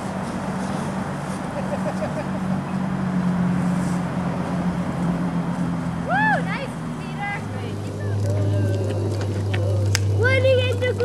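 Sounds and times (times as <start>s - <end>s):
low engine-like drone: 0.0s - 11.0s
child squealing: 6.0s - 6.7s.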